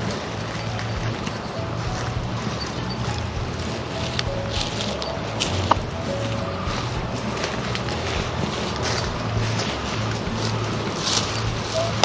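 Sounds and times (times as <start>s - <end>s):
chickens scratching in dry leaves: 0.0s - 12.0s
wind noise on microphone: 0.0s - 12.0s.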